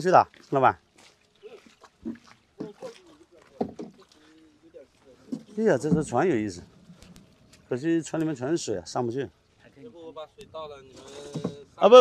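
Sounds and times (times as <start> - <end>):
person wading through water: 0.0 - 8.7.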